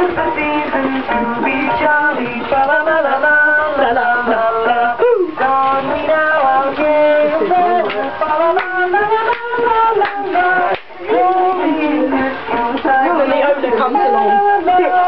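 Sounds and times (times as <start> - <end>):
christmas song with singing: 0.0 - 15.0.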